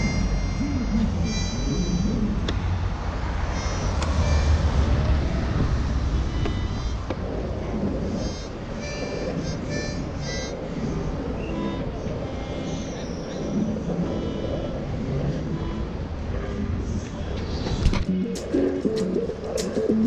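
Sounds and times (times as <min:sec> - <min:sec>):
wind on microphone: 0:00.0 - 0:20.0.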